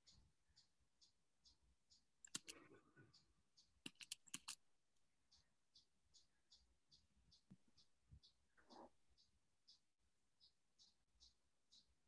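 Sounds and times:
computer keyboard typing: 2.2s - 2.7s, 3.8s - 4.6s.

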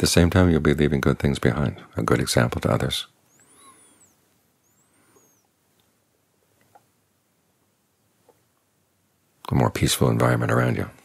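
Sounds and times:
faint high chirps: 3.1s - 5.9s.

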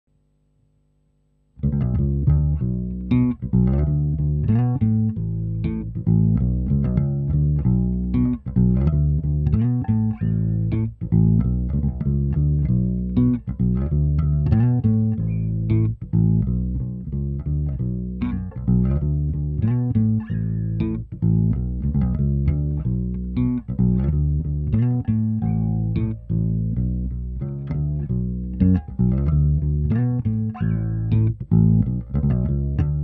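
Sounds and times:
electric bass plucked notes: 1.5s - 33.0s.

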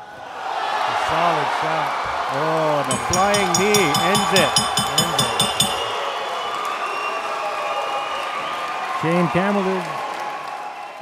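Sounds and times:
crowd cheering and applauding: 0.0s - 11.0s.

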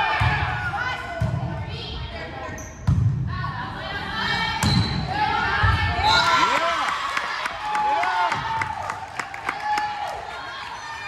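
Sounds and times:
voices of players and spectators: 0.0s - 11.0s
crowd cheering: 5.8s - 11.0s.

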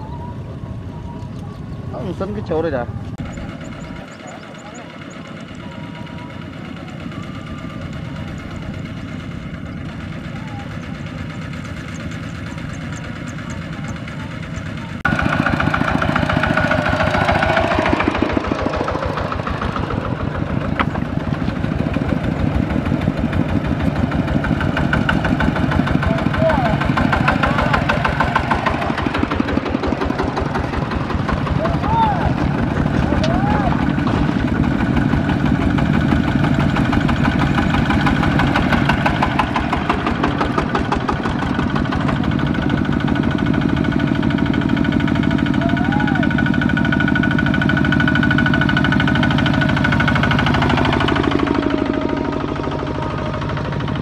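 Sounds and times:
diesel tiller engines chugging: 0.0s - 54.0s.

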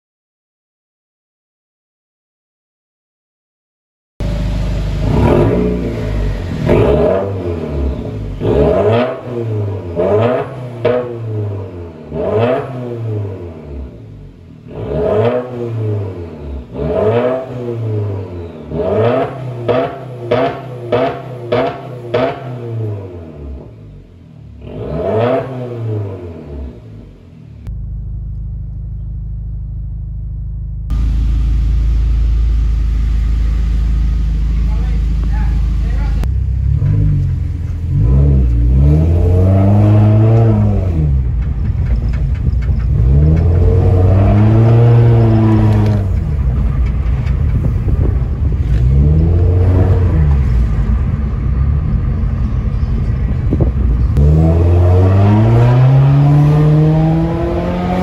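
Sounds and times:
car engine idling: 4.2s - 12.3s, 26.2s - 54.8s
car engine revving: 4.2s - 58.0s.

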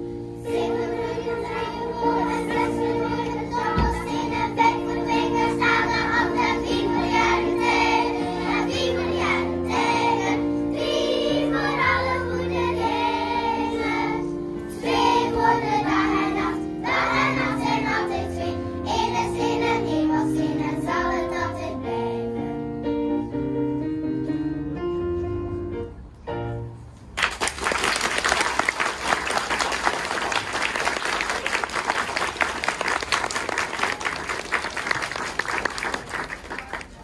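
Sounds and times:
children's choir singing: 0.0s - 22.6s
piano accompaniment: 0.0s - 27.2s.

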